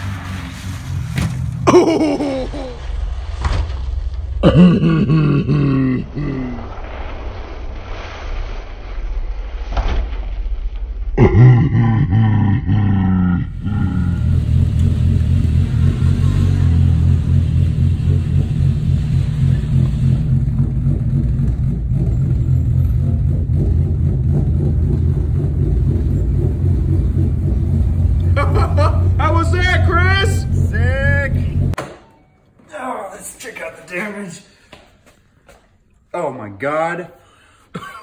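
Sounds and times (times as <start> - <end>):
car engine revving: 0.0 - 3.8, 13.5 - 31.8.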